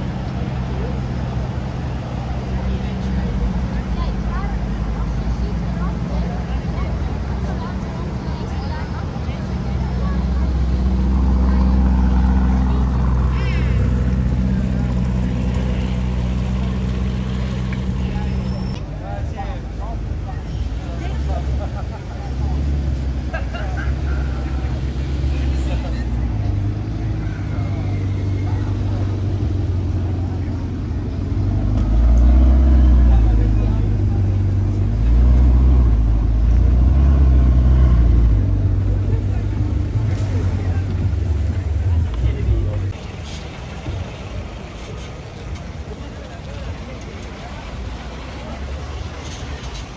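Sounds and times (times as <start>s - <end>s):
car engine idling low: 0.0s - 49.9s
crowd voices: 0.0s - 49.9s
car engine revving away: 10.0s - 18.7s, 22.2s - 45.0s.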